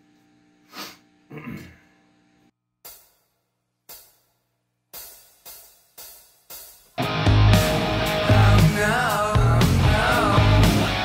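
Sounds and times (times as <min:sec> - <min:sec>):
hi-hat ticks: 0:03.9 - 0:07.0.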